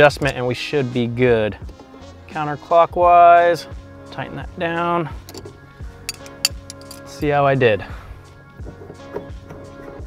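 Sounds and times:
background music soft beat: 0.0s - 10.0s
wrenches clicking on metal: 6.1s - 7.2s.

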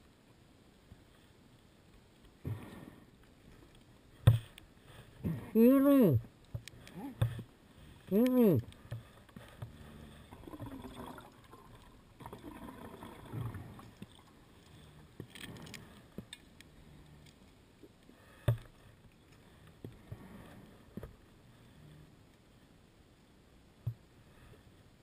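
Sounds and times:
water swelling: 9.8s - 14.7s.

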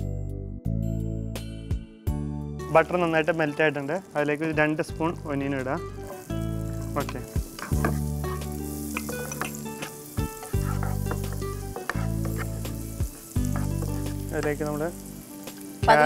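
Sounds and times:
background music with low chords: 0.0s - 16.0s
onion sizzling in butter: 2.6s - 16.0s
spatula scraping pan: 7.1s - 14.3s.

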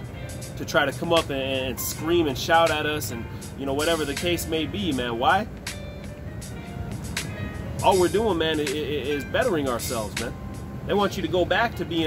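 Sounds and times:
faint music: 0.0s - 12.0s
low city rumble: 0.0s - 12.0s
man talking: 0.6s - 5.5s, 7.8s - 10.3s, 10.9s - 12.0s.

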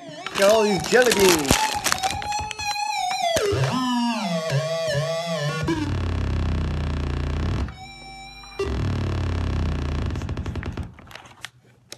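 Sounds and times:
low buzzing synthesizer drone: 3.5s - 11.0s.

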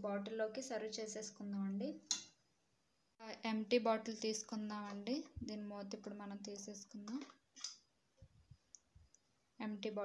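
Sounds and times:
woman speaking: 0.0s - 2.1s, 3.2s - 7.4s, 9.6s - 10.0s.

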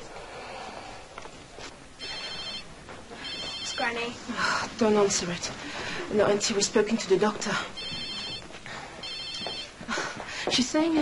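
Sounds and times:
phone ringtone trills: 2.0s - 4.1s, 7.8s - 9.8s.

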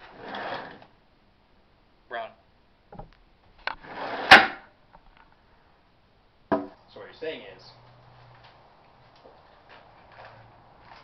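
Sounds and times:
sharp wooden knock: 6.5s - 6.8s.

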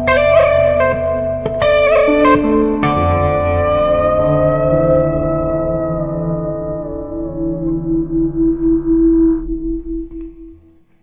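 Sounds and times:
overdriven electric guitar note: 0.0s - 10.8s.

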